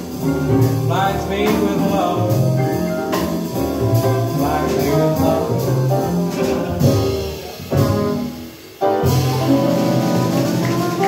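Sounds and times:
small jazz band playing: 0.0s - 11.0s
trombone: 0.0s - 11.0s.

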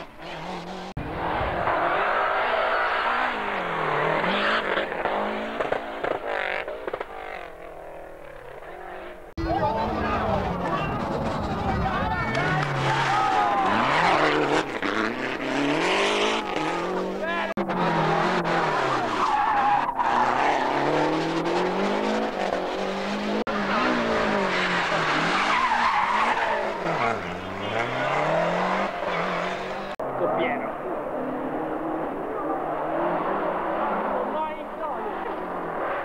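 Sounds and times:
rally car engine revving hard: 0.0s - 7.0s, 10.2s - 30.0s, 31.1s - 36.0s
tyre and road noise: 0.0s - 36.0s.

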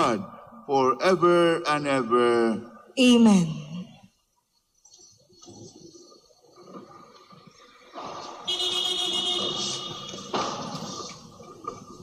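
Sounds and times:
high-pitched horn-like tone: 8.5s - 10.3s.

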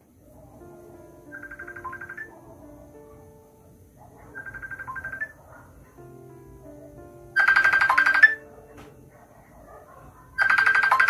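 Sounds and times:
soft background music: 0.0s - 11.0s
phone trilling ring: 1.3s - 2.3s, 4.4s - 5.4s, 7.4s - 8.4s, 10.4s - 11.0s.

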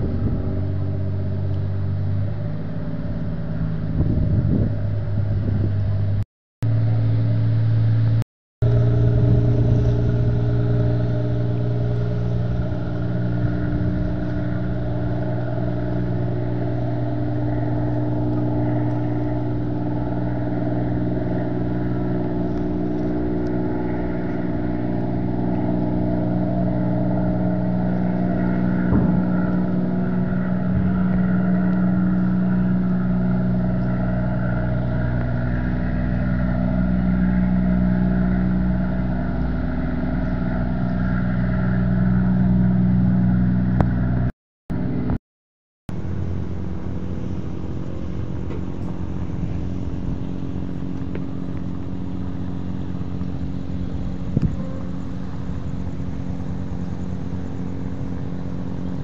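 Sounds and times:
ship diesel engines droning: 0.0s - 45.2s, 45.9s - 59.0s.

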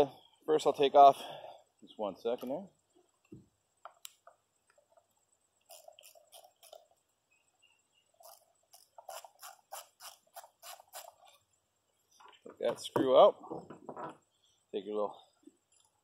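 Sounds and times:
screwdriver clicking and squeaking: 5.6s - 6.9s, 8.2s - 11.4s.

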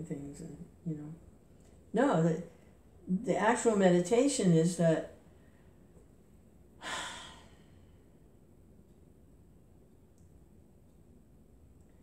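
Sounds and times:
woman sighing breath: 6.8s - 7.8s.

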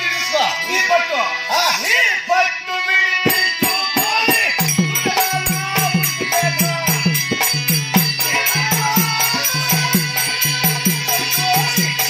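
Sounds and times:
person singing: 2.8s - 12.0s.

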